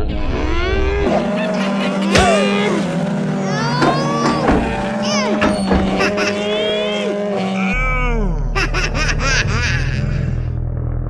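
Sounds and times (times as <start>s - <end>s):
squeaky cartoon voice effects: 3.4s - 8.2s
steady low background: 7.8s - 11.0s.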